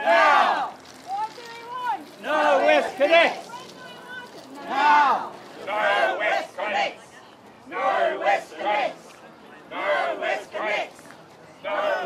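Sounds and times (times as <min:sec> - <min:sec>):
protest marchers chanting: 0:00.0 - 0:00.8, 0:01.8 - 0:09.1, 0:09.7 - 0:11.0, 0:11.6 - 0:12.0.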